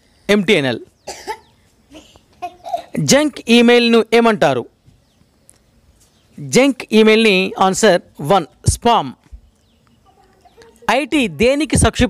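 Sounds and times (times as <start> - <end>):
person coughing: 1.1 - 3.0.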